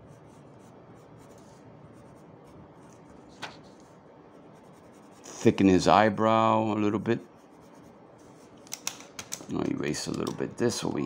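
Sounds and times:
pencil scratching on paper: 0.0 - 5.8, 7.2 - 8.6.

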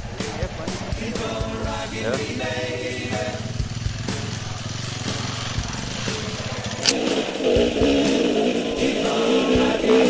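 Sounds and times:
motorcycle engine running at low revs: 0.0 - 10.0.

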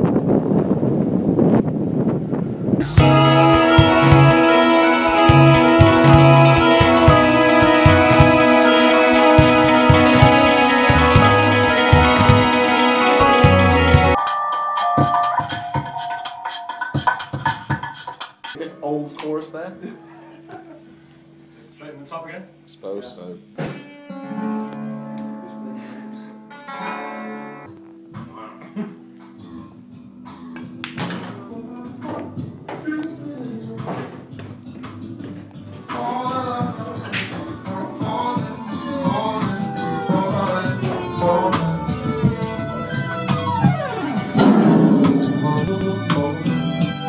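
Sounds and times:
acoustic guitar playing: 2.9 - 18.0, 23.4 - 28.3, 38.2 - 47.0
band music over studio monitors: 2.9 - 18.1, 35.8 - 47.0.

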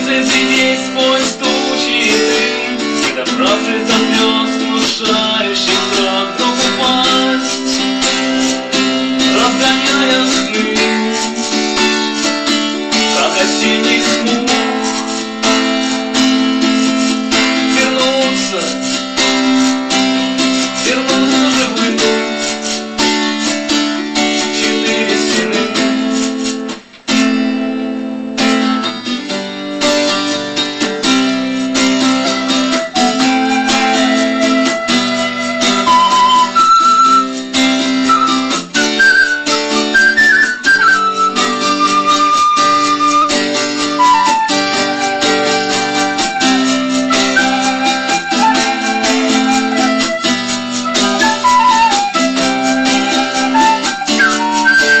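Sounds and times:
high held melody notes: 0.0 - 26.7, 30.0 - 55.0
acoustic guitar strumming: 0.0 - 55.0.

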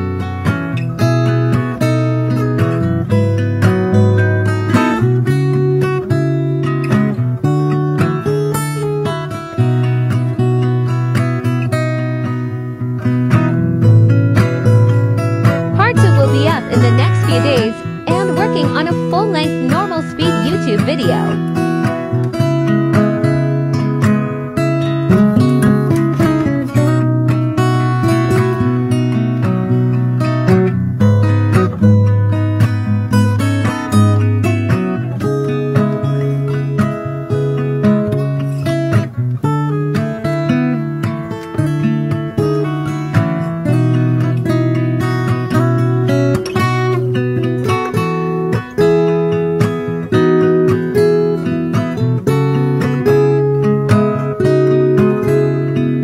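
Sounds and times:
strummed acoustic guitar: 0.0 - 56.0.

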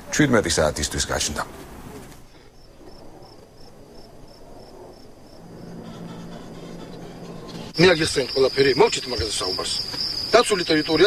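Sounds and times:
crickets chirping: 2.3 - 11.0
low steady hum: 4.4 - 8.7.

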